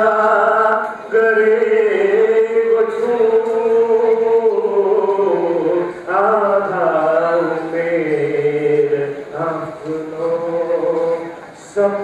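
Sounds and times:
man chanting a poem: 0.0 - 12.0.

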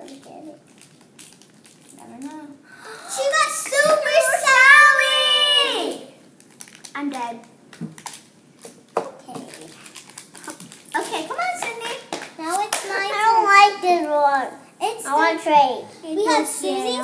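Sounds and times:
girls' wordless vocal sounds: 2.4 - 6.2
girl's excited exclamation: 2.8 - 6.1.

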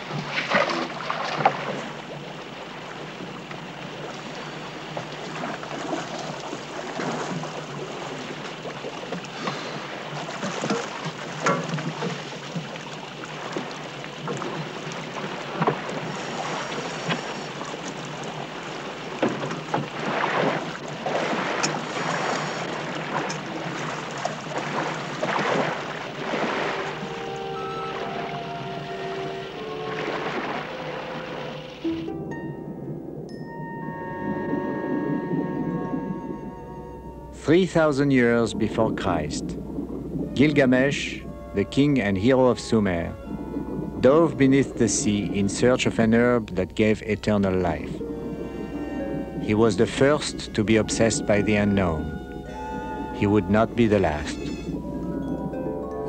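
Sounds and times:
water splashing: 0.0 - 56.0
scuba tanks knocking: 6.4 - 30.5
held music notes: 26.1 - 56.0.

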